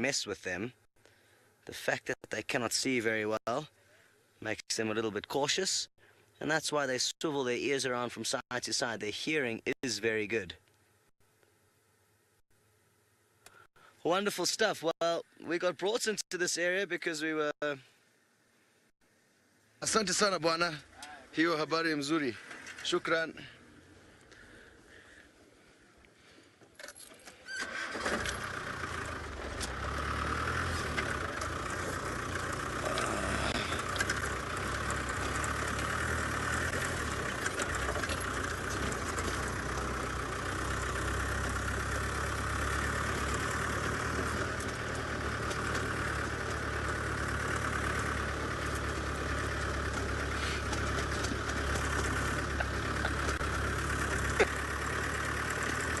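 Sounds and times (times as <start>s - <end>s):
vehicle engine starting and running: 26.9s - 56.0s.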